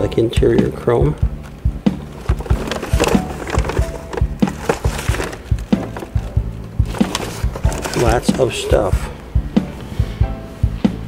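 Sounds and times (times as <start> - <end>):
background music: 0.0 - 11.0
boxes and parts knocking and rustling: 1.1 - 9.1.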